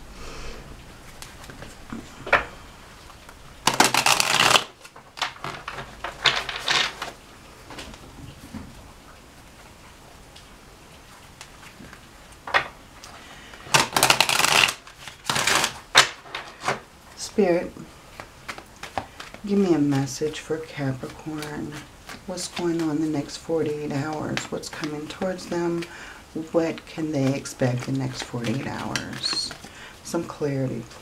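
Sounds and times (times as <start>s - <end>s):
cards being shuffled: 3.2s - 7.2s, 13.5s - 16.8s, 18.1s - 31.0s.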